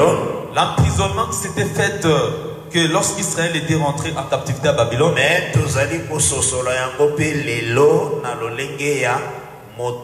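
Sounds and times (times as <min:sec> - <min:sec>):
man preaching in drawn-out syllables: 0:00.0 - 0:10.0.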